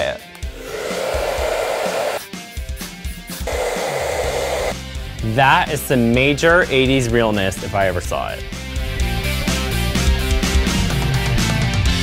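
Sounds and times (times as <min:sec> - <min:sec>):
hair dryer blowing: 0:00.5 - 0:02.3, 0:03.4 - 0:04.8.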